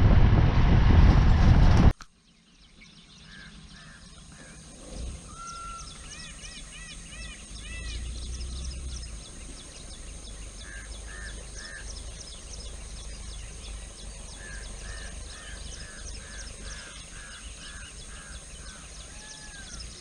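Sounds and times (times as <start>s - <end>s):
low rumble: 0.0s - 2.0s
arching bird notes: 2.2s - 20.0s
lower bird calls: 2.2s - 20.0s.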